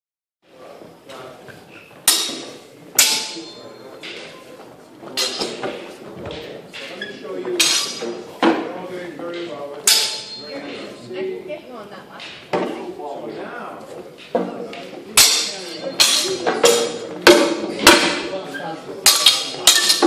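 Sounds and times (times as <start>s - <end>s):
swords striking shields: 2.0s - 4.2s, 7.6s - 8.7s, 9.8s - 10.5s, 15.2s - 18.3s, 19.0s - 20.0s.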